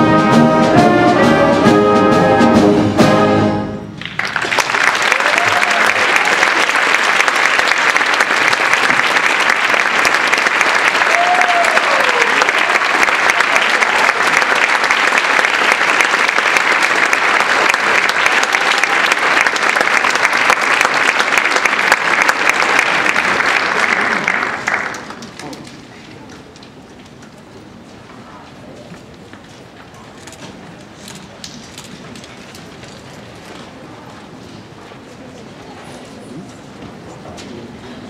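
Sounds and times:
audience applauding: 4.0 - 26.6.

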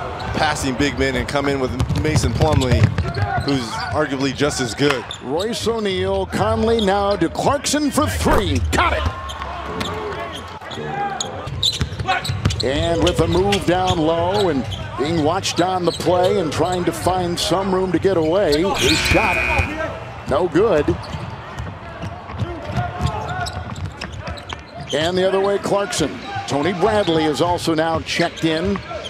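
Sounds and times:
voices: 18.5 - 20.0
players shouting: 18.7 - 20.2.

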